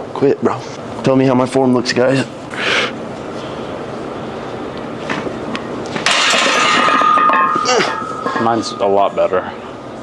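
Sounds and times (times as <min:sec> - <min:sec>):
steady background hiss: 0:00.0 - 0:10.0
barbell clanging on rack: 0:06.0 - 0:09.4.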